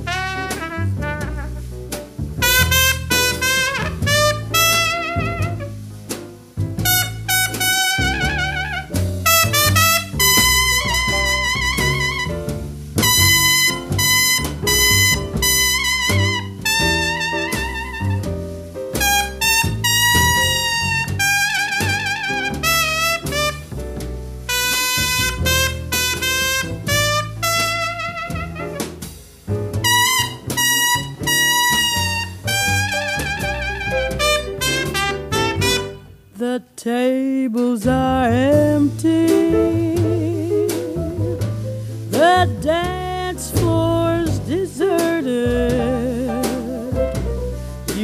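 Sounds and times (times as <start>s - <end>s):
trumpet solo with band: 0.0s - 1.7s, 2.3s - 6.2s, 6.8s - 23.9s, 24.5s - 29.2s, 29.8s - 36.2s
person singing: 36.4s - 40.9s, 42.2s - 47.1s.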